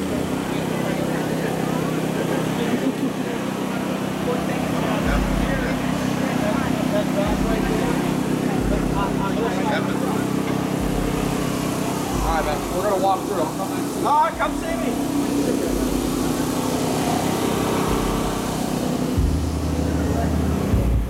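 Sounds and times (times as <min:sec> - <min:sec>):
low mechanical hum: 0:00.0 - 0:21.0
people chattering: 0:00.0 - 0:21.0.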